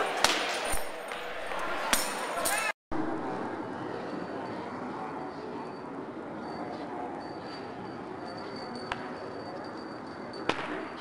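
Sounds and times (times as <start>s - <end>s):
indoor hall hubbub: 0.0s - 11.0s.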